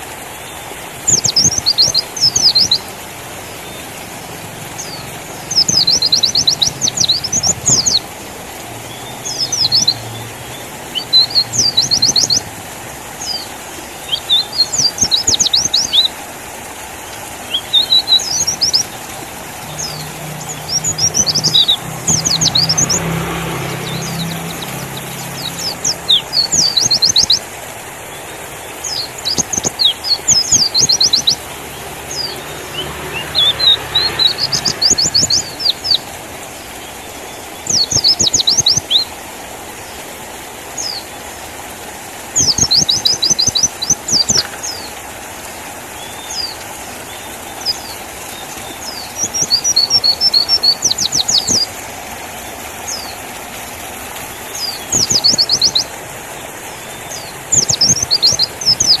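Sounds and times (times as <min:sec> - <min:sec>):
bird high chirps: 0:01.1 - 0:02.9, 0:04.8 - 0:08.1, 0:09.0 - 0:10.3, 0:10.9 - 0:12.4, 0:13.2 - 0:16.1, 0:17.5 - 0:23.1, 0:23.7 - 0:27.4, 0:28.8 - 0:31.5, 0:32.1 - 0:36.1, 0:37.6 - 0:39.1, 0:42.4 - 0:44.9, 0:47.6 - 0:51.7, 0:54.4 - 0:56.0, 0:57.0 - 0:59.0.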